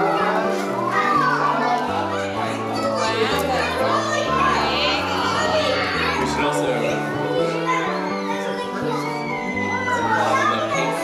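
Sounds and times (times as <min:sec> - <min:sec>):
adult voices: 0:00.0 - 0:11.0
children chattering and calling: 0:00.0 - 0:11.0.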